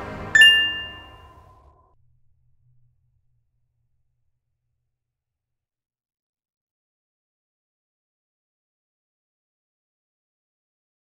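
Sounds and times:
bright chime: 0:00.4 - 0:01.3.

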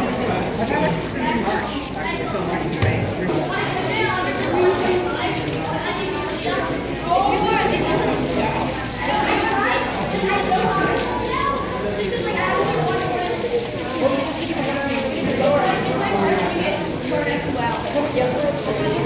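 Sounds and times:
murmur of people talking: 0:00.0 - 0:19.0.

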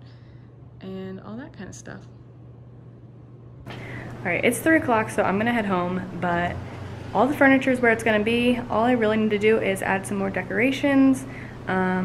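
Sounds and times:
low hum with faint hiss: 0:00.0 - 0:12.0
woman's voice: 0:03.7 - 0:12.0.

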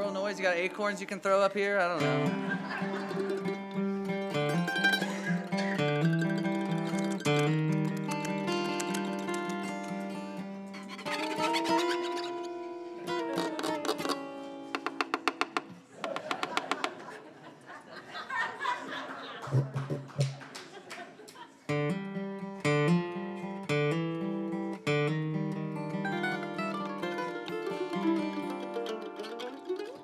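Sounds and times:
acoustic guitar: 0:00.0 - 0:16.9, 0:21.7 - 0:30.0
mandolin: 0:00.0 - 0:17.2, 0:21.7 - 0:30.0
sharp percussive clicks: 0:14.8 - 0:17.0.

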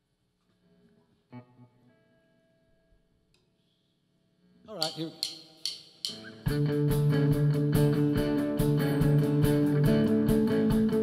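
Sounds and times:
plucked guitar notes: 0:06.0 - 0:11.0.

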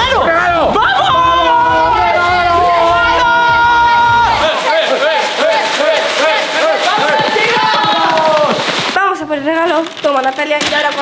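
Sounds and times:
young men yelling and whooping: 0:00.0 - 0:08.7
wrapping paper rustling and tearing: 0:04.4 - 0:09.0, 0:09.6 - 0:11.0.

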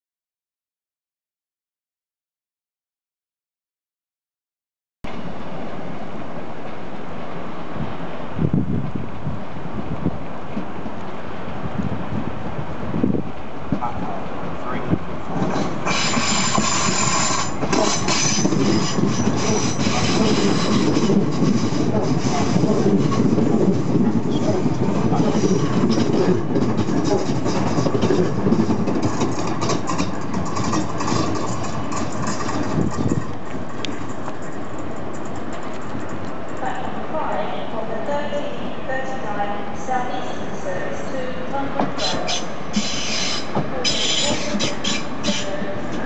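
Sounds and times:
electric train passing: 0:05.1 - 0:46.0
high-pitched train noise: 0:09.4 - 0:46.0
rail clatter: 0:13.3 - 0:37.5, 0:41.6 - 0:46.0.

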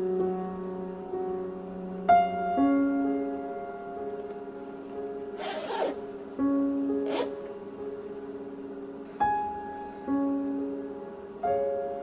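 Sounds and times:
calm piano music: 0:00.0 - 0:12.0
zipper on a bag: 0:05.4 - 0:06.0, 0:07.0 - 0:07.4.

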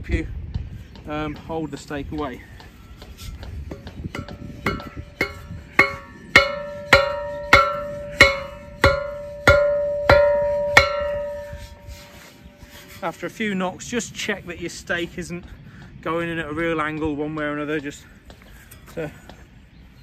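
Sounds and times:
steel tube ringing: 0:03.7 - 0:13.0.

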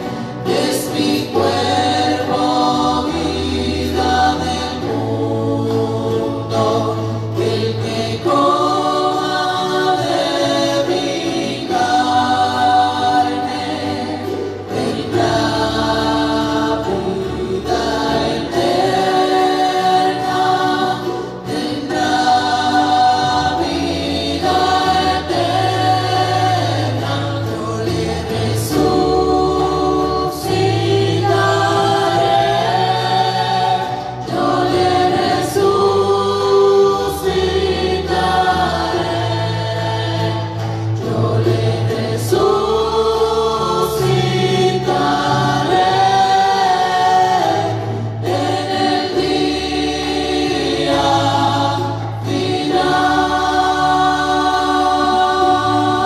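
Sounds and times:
church choir singing a hymn: 0:00.0 - 0:56.0.

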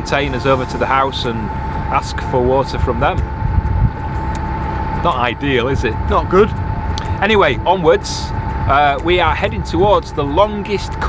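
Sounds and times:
boat engine rumbling: 0:00.0 - 0:11.0
thin steady high tone: 0:00.0 - 0:11.0.

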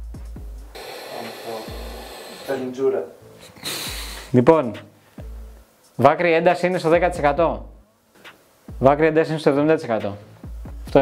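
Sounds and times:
cooling fan hiss and whine: 0:00.0 - 0:11.0.

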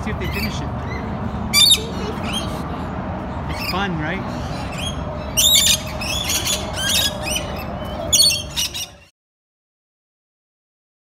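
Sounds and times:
parrots squawking: 0:00.1 - 0:09.1.

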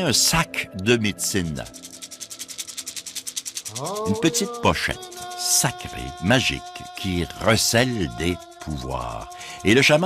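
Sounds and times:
rapid rattle of clicks: 0:01.3 - 0:10.0.

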